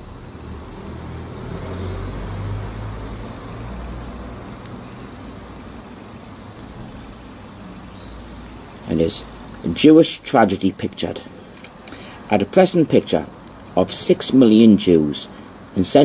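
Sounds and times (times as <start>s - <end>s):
faint hiss: 0.0s - 16.0s.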